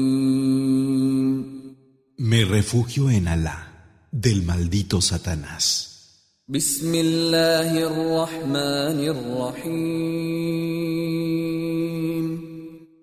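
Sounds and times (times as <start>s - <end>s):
man chanting melodic recitation: 6.5s - 12.4s.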